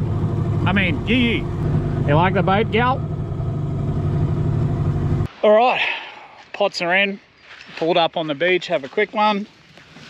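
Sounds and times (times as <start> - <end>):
outboard motor running: 0.0 - 5.3.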